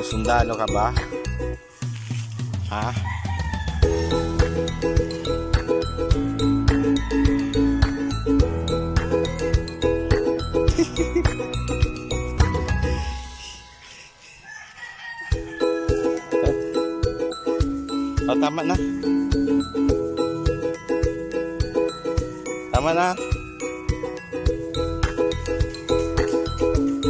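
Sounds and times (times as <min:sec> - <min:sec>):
background music: 0:00.0 - 0:27.0
rooster crowing: 0:02.8 - 0:04.6, 0:06.7 - 0:08.4, 0:14.3 - 0:16.9.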